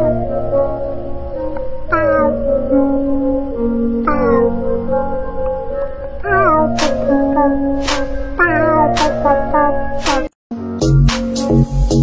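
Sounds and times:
meows sung to a tune: 1.9s - 2.4s, 4.0s - 4.8s, 6.2s - 6.8s, 8.4s - 10.3s.

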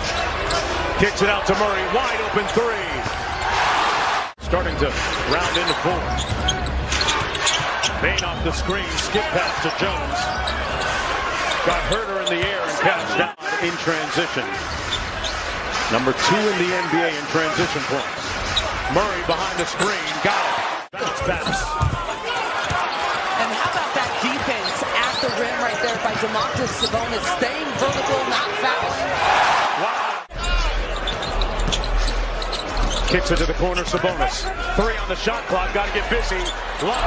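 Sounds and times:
sneakers squeaking: 0.0s - 0.8s, 5.0s - 13.3s, 14.5s - 20.3s, 21.0s - 29.2s, 30.3s - 35.0s, 35.6s - 37.0s
arena crowd noise: 0.0s - 37.0s
basketball dribbling: 21.1s - 28.9s.

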